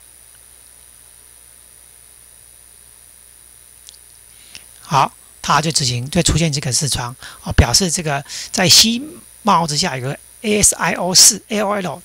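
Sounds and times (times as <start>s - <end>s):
electrical hum and hiss: 0.0s - 12.0s
faint high whine: 0.0s - 12.0s
small click: 3.8s - 4.7s.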